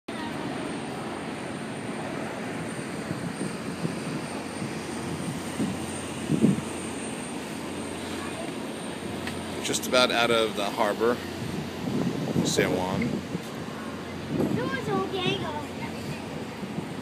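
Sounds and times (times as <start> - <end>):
wind rushing over microphone: 0.2 - 17.0.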